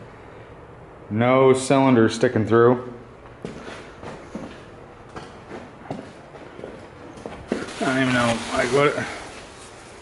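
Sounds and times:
footsteps on concrete: 3.2s - 7.9s.

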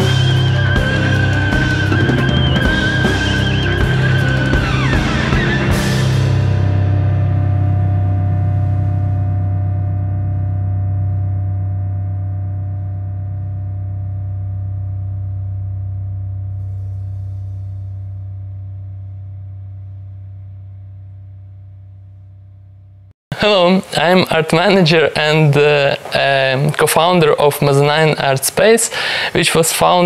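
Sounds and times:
band holding low chord: 0.0s - 23.0s.

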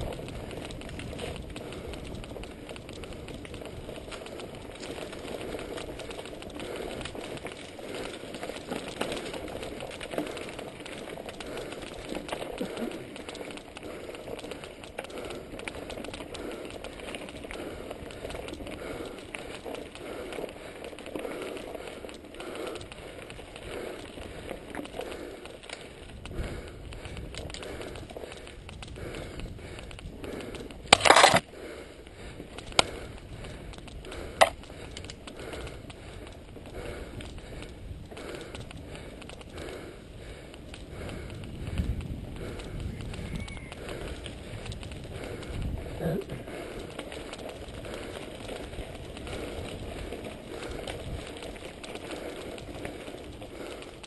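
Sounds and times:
bike rattling over bumps: 0.0s - 54.0s
bike tyres crunching on gravel: 0.0s - 54.0s
sharp clicks: 29.8s - 31.5s, 33.7s - 35.2s.

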